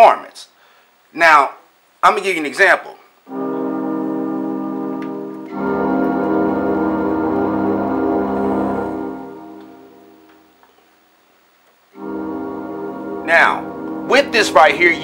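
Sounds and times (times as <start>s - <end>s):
synthesizer chords: 3.3s - 10.6s, 12.0s - 15.0s.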